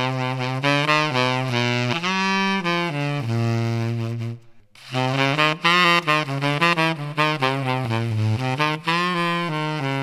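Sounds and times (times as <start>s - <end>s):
tenor saxophone playing: 0.0s - 10.0s.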